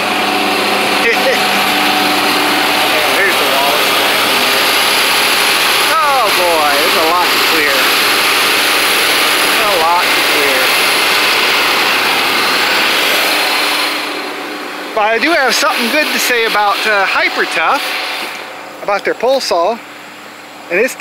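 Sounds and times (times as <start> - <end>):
tractor engine running: 0.0 - 21.0.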